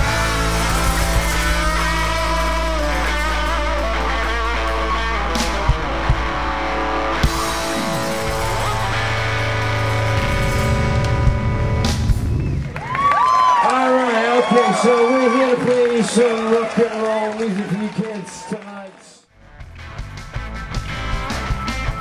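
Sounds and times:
rock band playing: 0:00.0 - 0:13.0, 0:19.4 - 0:22.0.

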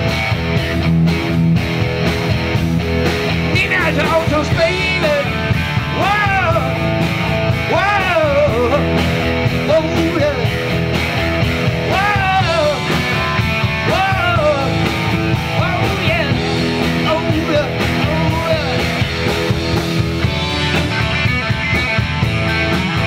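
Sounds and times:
drum kit: 0:00.0 - 0:23.0
electric bass: 0:00.0 - 0:23.0
electric guitar bent notes: 0:00.0 - 0:23.0.

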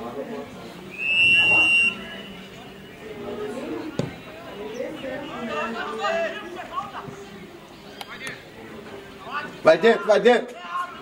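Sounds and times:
referee's whistle blast: 0:00.9 - 0:02.5.

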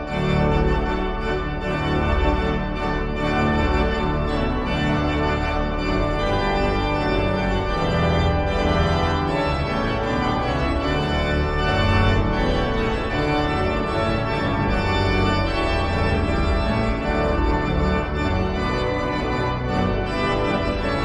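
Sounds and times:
pipe organ playing chords: 0:00.0 - 0:21.0.

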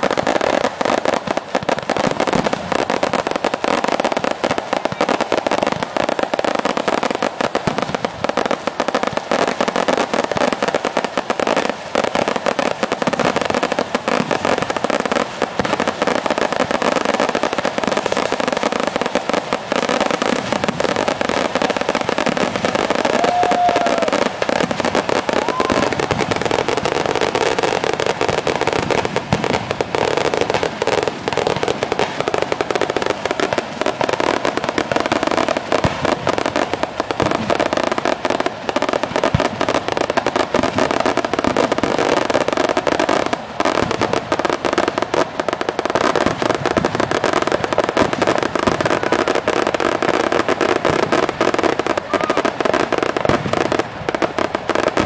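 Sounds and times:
firecrackers banging: 0:00.0 - 0:55.0.

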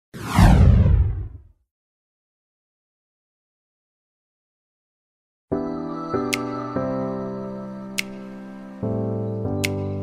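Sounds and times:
low rumble: 0:00.2 - 0:01.5
whoosh sweep falling in pitch: 0:00.2 - 0:01.5.

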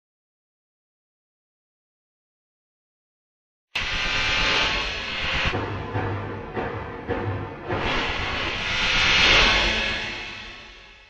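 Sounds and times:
jet-like rushing whoosh: 0:03.8 - 0:05.6, 0:07.6 - 0:11.0.

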